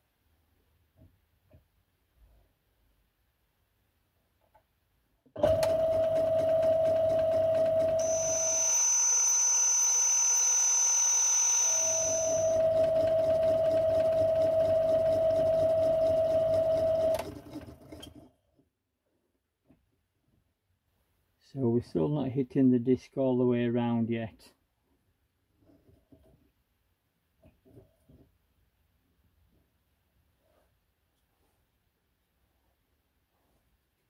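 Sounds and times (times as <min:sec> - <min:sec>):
metal lathe humming: 0:07.8 - 0:14.1
lathe tool cutting metal: 0:08.0 - 0:12.6.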